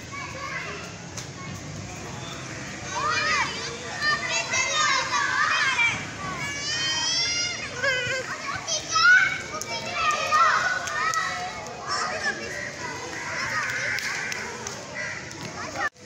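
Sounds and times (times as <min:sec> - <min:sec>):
children shouting at play: 0:00.0 - 0:16.0.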